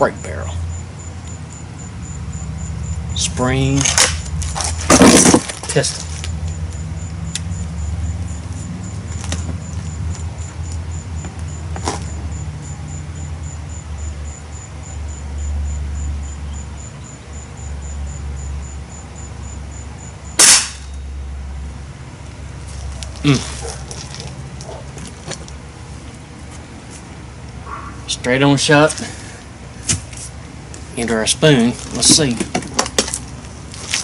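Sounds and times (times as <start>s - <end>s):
air rifle firing: 20.4s - 20.9s.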